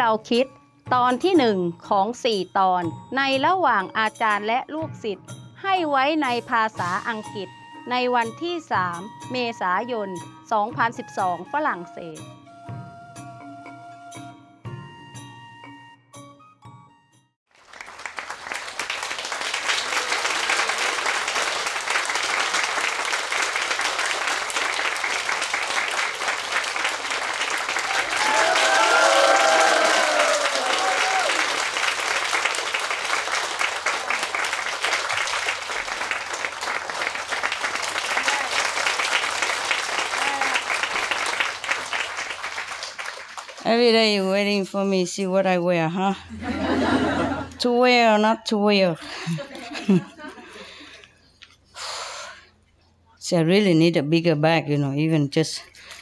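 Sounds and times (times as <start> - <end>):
audience clapping: 17.5 - 44.0.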